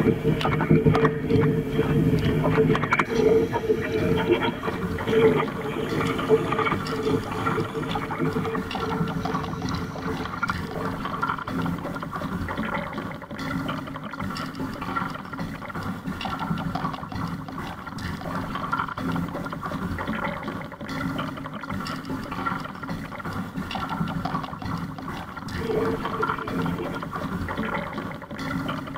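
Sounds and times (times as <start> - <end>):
water splashes: 0.0 - 28.9.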